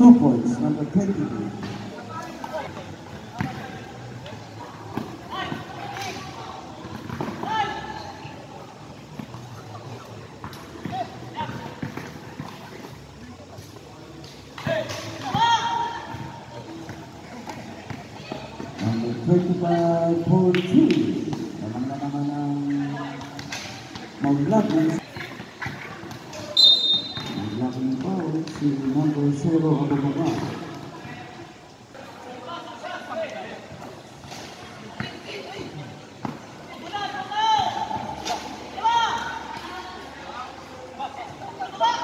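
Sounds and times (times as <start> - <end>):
players and spectators calling out: 0.0 - 13.7, 14.5 - 42.0.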